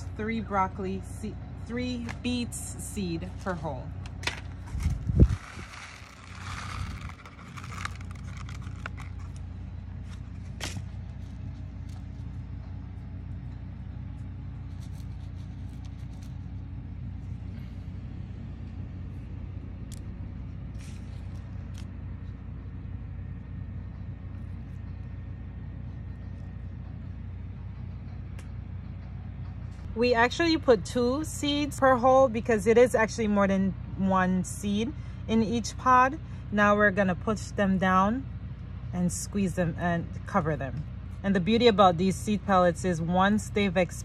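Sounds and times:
low background rumble: 0:00.0 - 0:44.0
paper seed packet rustling: 0:04.4 - 0:12.3, 0:14.5 - 0:16.7.

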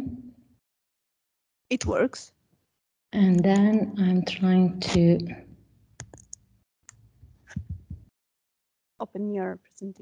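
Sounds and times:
computer clicks: 0:03.2 - 0:03.8, 0:06.0 - 0:07.0
person speaking: 0:03.2 - 0:05.4.

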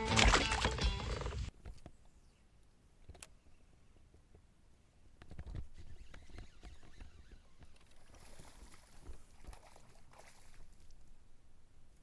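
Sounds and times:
water swishing and splashing: 0:00.0 - 0:01.5, 0:07.8 - 0:11.2.

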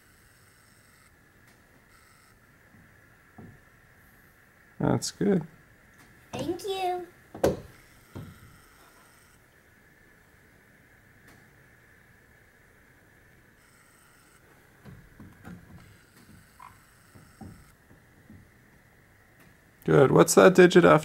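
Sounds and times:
low steady background tone: 0:00.0 - 0:21.0.

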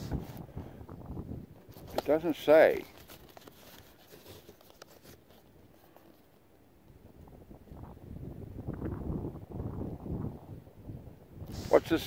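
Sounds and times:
wind rumble on microphone: 0:00.0 - 0:03.3, 0:06.8 - 0:12.0
cardboard box clicks and rustles: 0:02.8 - 0:05.5.

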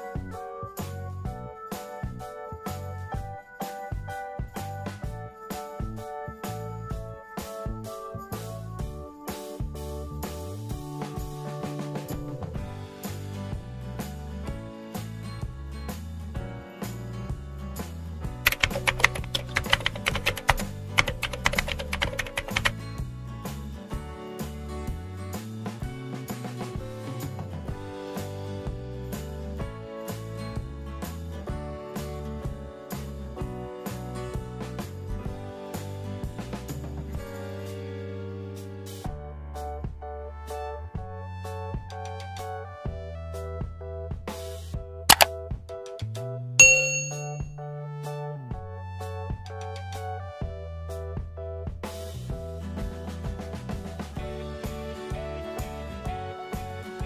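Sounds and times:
background music: 0:00.0 - 0:57.0
metallic clicking and clinking: 0:46.6 - 0:47.4
bell-like notification ding: 0:46.6 - 0:47.6.

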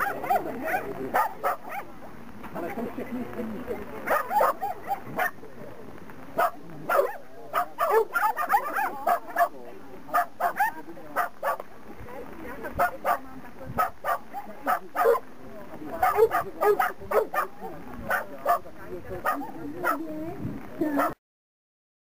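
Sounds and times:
dog barking: 0:00.0 - 0:01.9, 0:04.1 - 0:05.4, 0:06.4 - 0:11.6, 0:12.8 - 0:13.2, 0:13.8 - 0:15.2, 0:16.0 - 0:20.0, 0:21.0 - 0:21.2.

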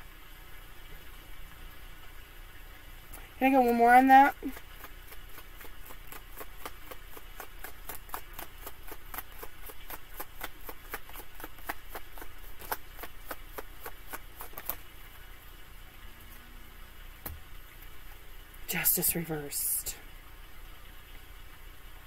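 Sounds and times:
cards being shuffled: 0:04.4 - 0:14.8.

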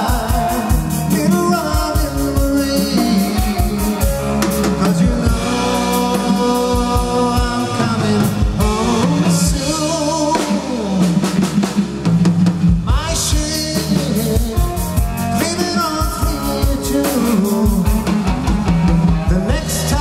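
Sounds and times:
bass guitar: 0:00.0 - 0:20.0
drum kit with cymbals: 0:00.0 - 0:20.0
electric guitar: 0:00.0 - 0:20.0.

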